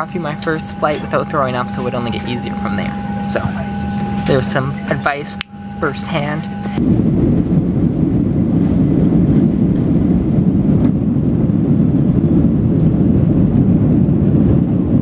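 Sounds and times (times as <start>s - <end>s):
jet engines and rolling wheels: 0.0s - 15.0s.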